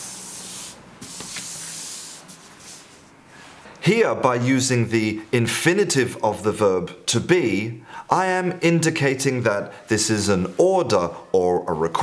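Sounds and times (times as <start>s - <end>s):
paper cards sliding on surface: 0.0s - 3.7s.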